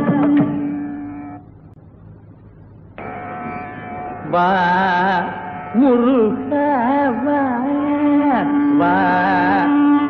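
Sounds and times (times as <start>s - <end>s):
faint background hiss: 0.0s - 10.0s
steady drone with overtones: 0.0s - 10.0s.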